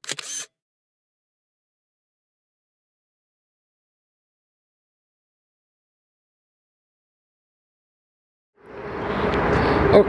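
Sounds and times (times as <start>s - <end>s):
camera shutter click: 0.0s - 0.5s.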